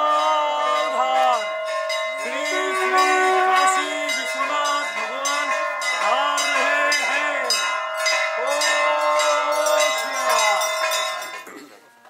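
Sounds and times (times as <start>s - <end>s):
bells ringing: 0.0s - 12.0s.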